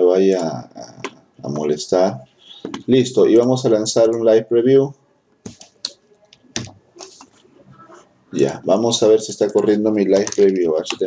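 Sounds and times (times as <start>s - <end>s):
computer mouse and keyboard clicks: 9.3s - 11.0s.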